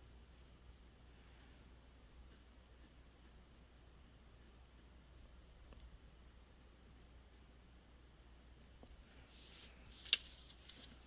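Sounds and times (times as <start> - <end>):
low steady hum: 0.0 - 11.0
pencil scratching on paper: 2.2 - 5.3.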